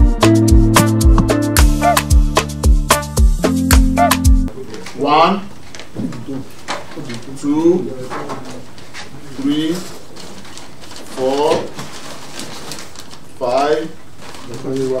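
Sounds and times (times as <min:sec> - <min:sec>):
man calling out words: 0:04.0 - 0:05.6
paper clicks and rustles: 0:05.6 - 0:15.0.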